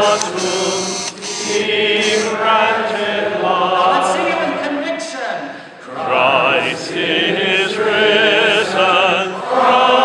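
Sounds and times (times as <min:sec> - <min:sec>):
congregation singing a chant: 0:00.0 - 0:10.0.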